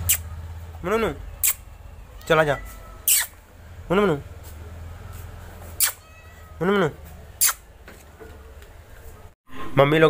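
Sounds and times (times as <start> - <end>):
cat meowing: 1.8 - 3.4, 5.8 - 6.9.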